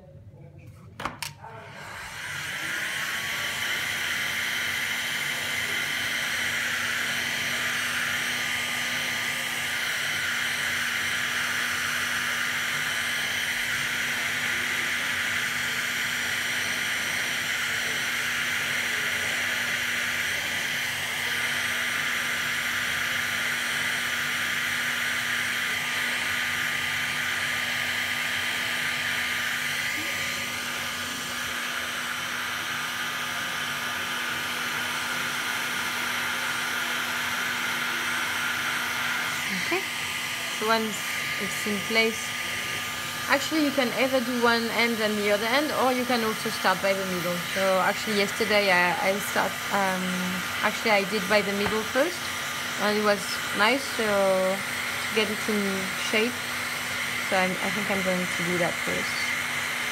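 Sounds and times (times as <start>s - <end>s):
heat gun blowing air: 1.4s - 59.9s.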